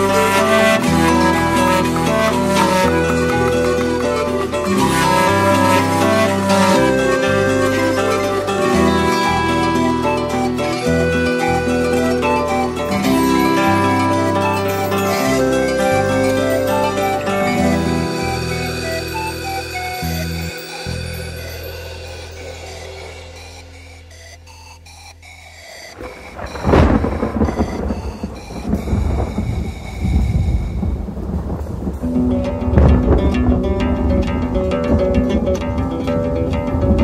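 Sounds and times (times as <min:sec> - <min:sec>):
rain: 0:00.0 - 0:23.8, 0:25.9 - 0:37.0
andean music: 0:00.0 - 0:37.0
rumbling thunder: 0:26.0 - 0:37.0
thunderclap: 0:26.0 - 0:37.0.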